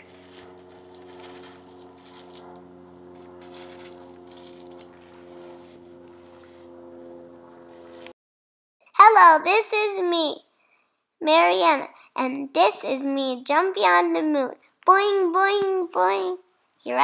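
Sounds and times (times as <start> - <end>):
gravel clicking and rustling: 0.0 - 5.2
low mechanical hum: 0.0 - 8.2.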